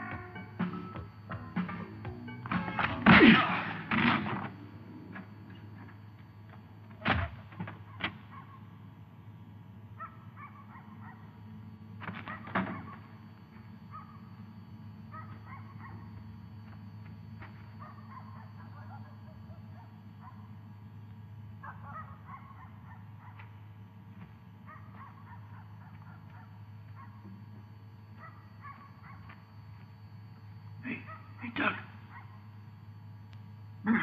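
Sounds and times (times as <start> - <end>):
steady low hum: 0.0 - 34.0
dog barking: 7.7 - 8.8, 10.0 - 11.4, 12.2 - 13.2, 13.9 - 14.3, 15.1 - 16.2, 17.8 - 20.6, 21.6 - 23.6, 24.6 - 27.4, 28.2 - 29.4, 31.0 - 31.4, 32.0 - 32.5.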